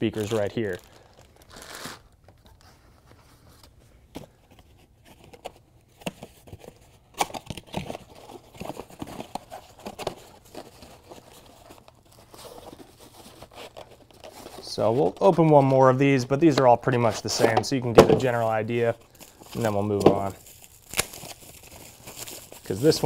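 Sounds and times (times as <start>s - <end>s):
plastic bags crinkling: 0.0s - 2.5s, 17.2s - 23.0s.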